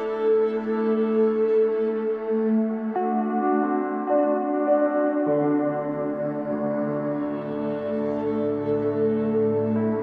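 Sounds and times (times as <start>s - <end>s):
ambient music with held tones: 0.0s - 10.0s.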